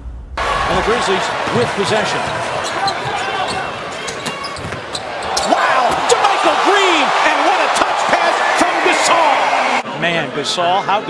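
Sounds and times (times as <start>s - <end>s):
arena crowd: 0.4s - 11.0s
sneakers squeaking: 1.4s - 6.3s.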